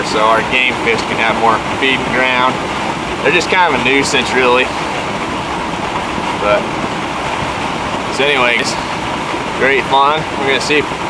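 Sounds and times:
steady rushing noise: 0.0 - 11.0.

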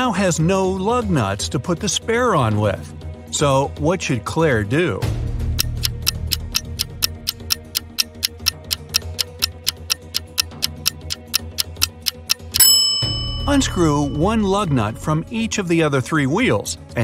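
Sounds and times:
background music: 0.0 - 17.0
clock ticking: 5.5 - 14.9
bell-like chime: 12.5 - 15.2.

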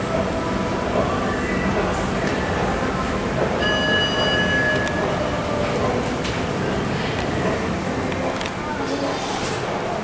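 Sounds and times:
elevator chime: 3.6 - 5.4.

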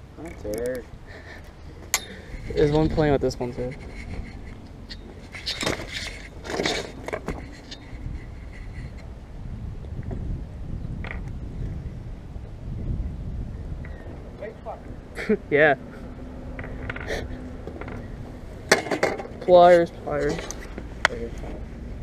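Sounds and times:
steady low rumble: 0.0 - 22.0
short scrapes and knocks: 2.1 - 9.1, 18.7 - 21.6
fabric rubbing on microphone: 2.3 - 4.6.

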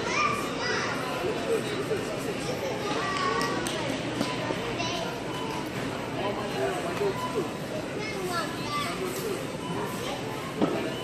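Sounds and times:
children's high voices: 0.0 - 1.5
background talk: 0.0 - 11.0.

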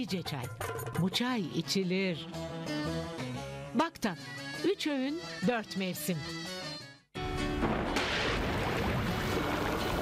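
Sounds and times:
rain splashing on water: 7.9 - 10.0.

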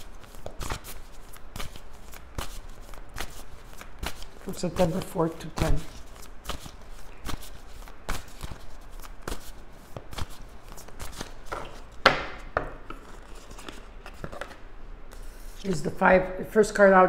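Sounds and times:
cards slapping and brushing: 0.0 - 15.8
cards tapping on wooden table: 11.5 - 13.0.

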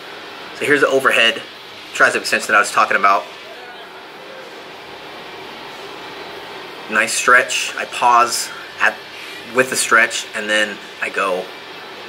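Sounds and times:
low room noise hiss: 0.0 - 12.0.

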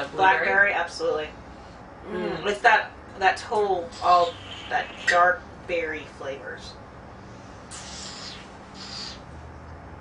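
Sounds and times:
person sniffing: 7.7 - 9.2.

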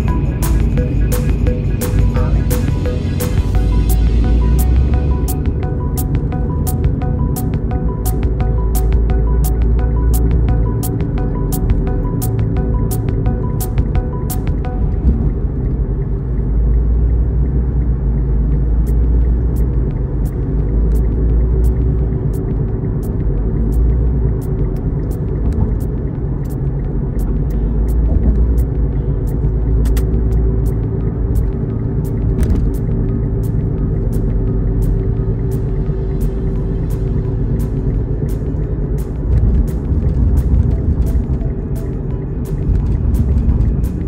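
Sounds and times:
music with steady beat: 0.0 - 16.9, 18.2 - 44.0
car cabin road and engine rumble: 0.0 - 44.0.

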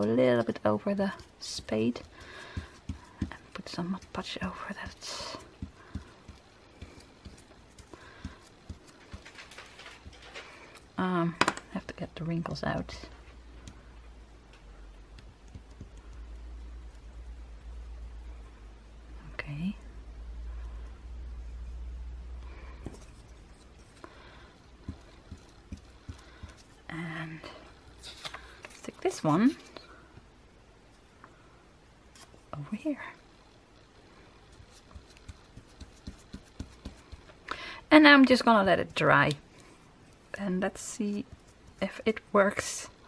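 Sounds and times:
low steady hum: 0.0 - 43.0
fingertips rustling paper: 0.2 - 10.9, 28.0 - 29.8, 34.5 - 37.4, 39.3 - 42.8.

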